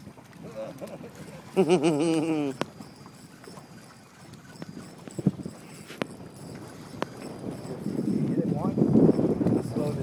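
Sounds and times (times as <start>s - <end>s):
faint wind: 0.0s - 10.0s
water noise: 0.0s - 10.0s.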